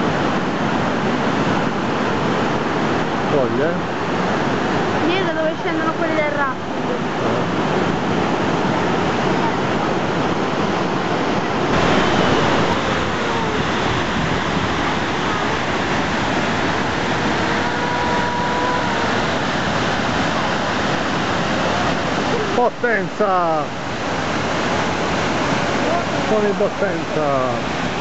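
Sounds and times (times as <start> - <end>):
waterfall rushing: 0.0 - 28.0.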